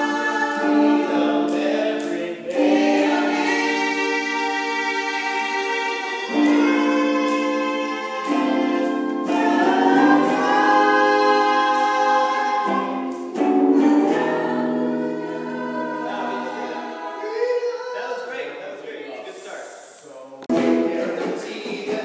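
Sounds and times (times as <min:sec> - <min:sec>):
choir singing held chords: 0:00.0 - 0:19.1.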